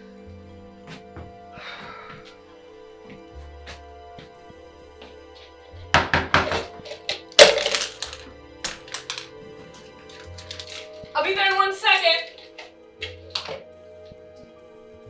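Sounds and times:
soft music: 0:00.0 - 0:15.0
paintbrushes clattering on wooden floor: 0:06.0 - 0:13.7.

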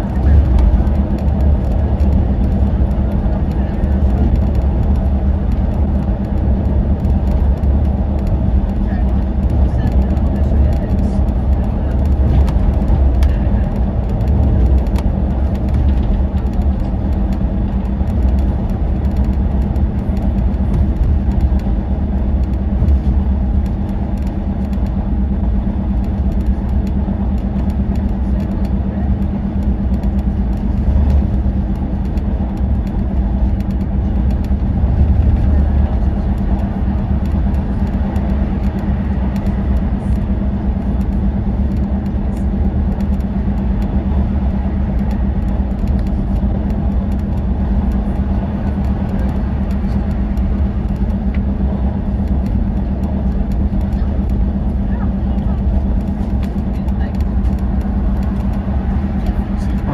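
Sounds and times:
diesel engine low hum: 0:00.0 - 0:59.9
tyre and road rumble: 0:00.0 - 0:59.9.

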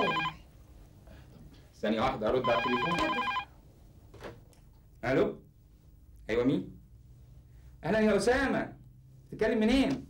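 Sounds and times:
telephone ringing: 0:00.0 - 0:00.4, 0:02.4 - 0:03.5.

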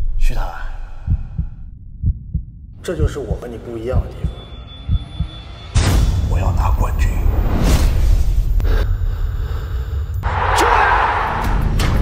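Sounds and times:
deep heartbeat thump: 0:01.0 - 0:03.4, 0:04.0 - 0:05.4.

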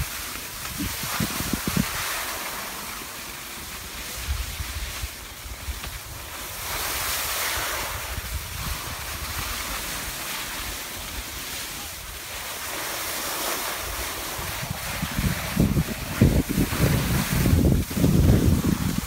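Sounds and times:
wind buffeting microphone: 0:00.0 - 0:02.4, 0:03.8 - 0:12.4, 0:13.6 - 0:19.0
skis sliding over snow: 0:00.0 - 0:19.0.

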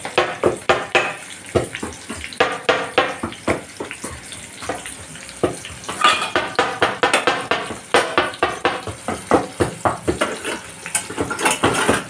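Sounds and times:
light sizzle of frying: 0:00.0 - 0:12.0
utensil clinking and scraping pan: 0:05.6 - 0:09.4, 0:10.1 - 0:12.0.

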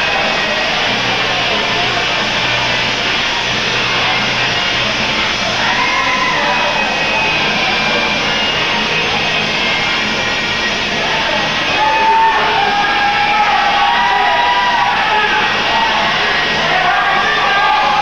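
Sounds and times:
crowd noise in a large hall: 0:00.0 - 0:18.0
music playing: 0:00.0 - 0:18.0.

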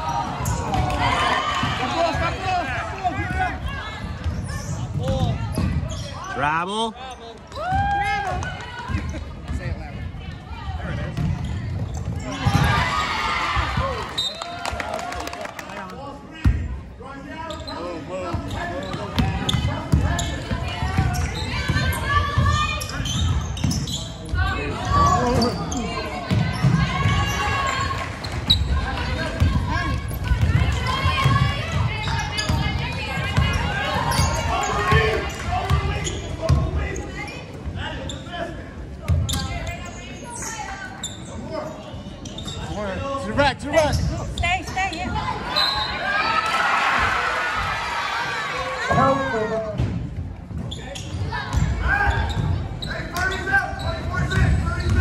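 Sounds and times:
voices in a gym: 0:00.0 - 0:55.0.

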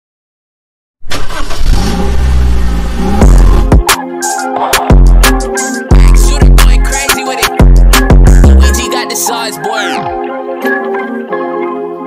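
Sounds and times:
car engine starting and revving: 0:01.0 - 0:03.8.

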